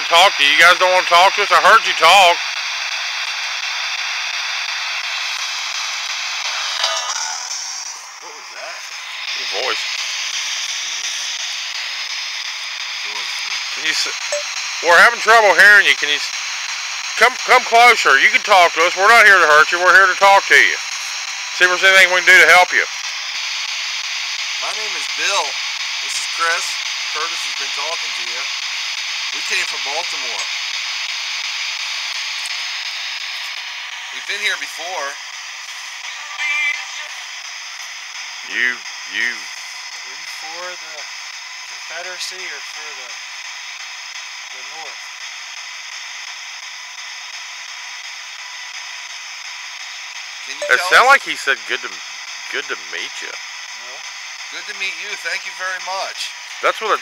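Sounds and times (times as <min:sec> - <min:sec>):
radio static hissing: 0:00.0 - 0:57.0
radio blip: 0:50.5 - 0:51.9.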